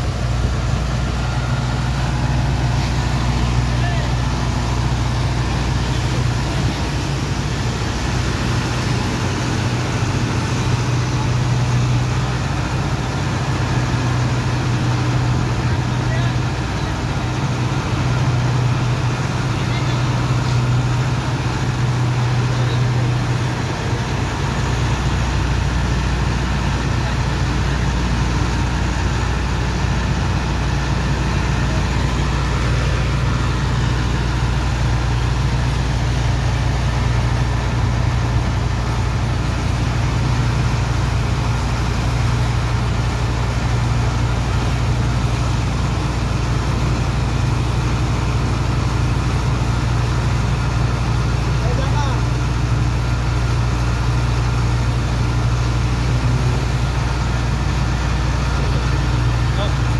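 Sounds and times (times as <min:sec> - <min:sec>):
water jet spraying: 0:00.0 - 0:59.9
water pump engine drone: 0:00.0 - 0:59.9.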